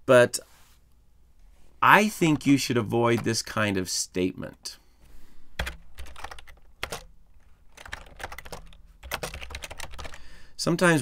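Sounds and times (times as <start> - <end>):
typing on a keyboard: 5.6 - 7.1, 7.7 - 10.2.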